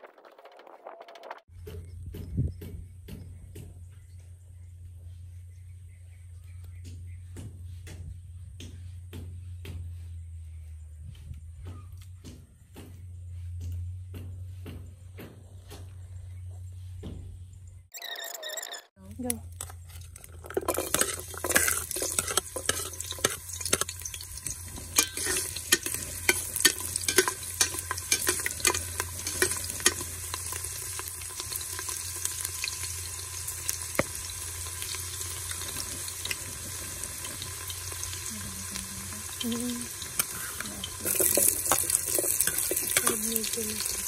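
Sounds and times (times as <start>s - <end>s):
garlic sizzling and popping in oil: 19.3s - 44.0s
onion dropping into hot oil: 40.0s - 44.0s.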